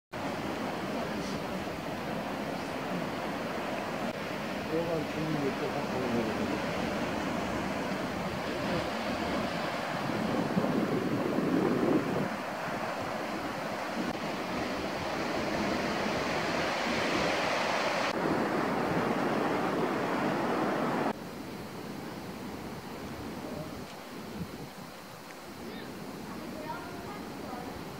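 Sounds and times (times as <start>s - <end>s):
sea surf breaking on rocks: 0.2s - 21.2s
wind on microphone: 0.2s - 27.9s.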